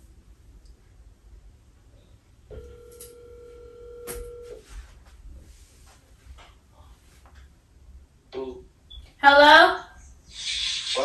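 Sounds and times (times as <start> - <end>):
telephone ringback tone: 2.5 - 4.6.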